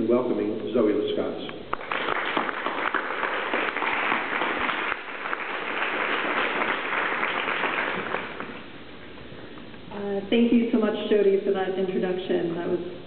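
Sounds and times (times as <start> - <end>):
audience applauding: 1.7 - 8.6.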